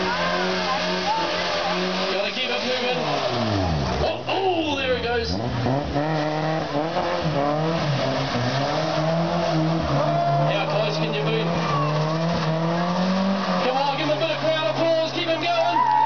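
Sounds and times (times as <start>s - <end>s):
tyres squealing on tarmac: 0.0s - 5.5s, 6.2s - 16.0s
car engine at high revs: 0.0s - 15.8s.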